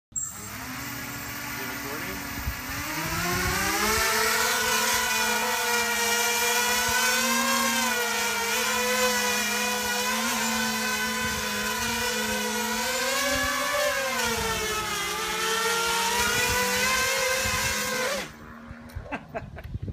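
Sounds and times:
quadcopter motors and propellers whining: 0.1 - 19.9.

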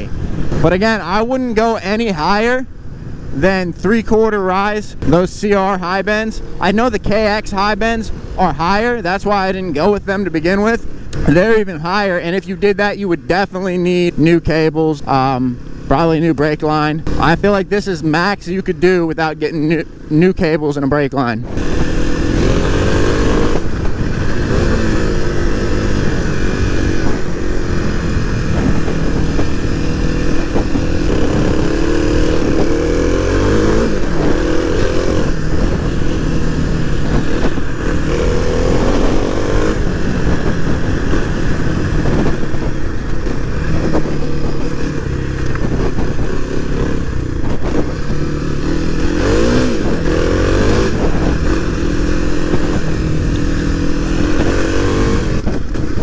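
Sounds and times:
motorcycle engine revving: 21.2 - 56.0.

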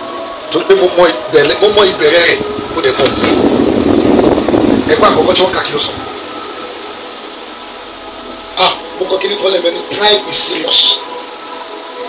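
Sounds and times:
man talking: 0.5 - 3.5, 4.8 - 6.1, 8.6 - 11.1.

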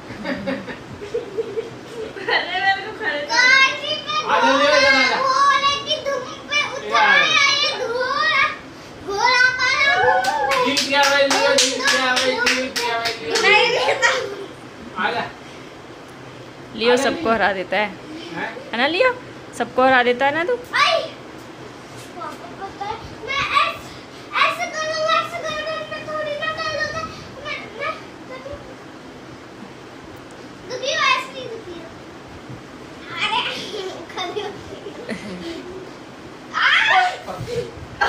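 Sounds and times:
low background noise: 0.0 - 38.0
children crying out at play: 3.3 - 10.7, 35.3 - 37.8
rhythmic hand clapping: 10.2 - 13.7.

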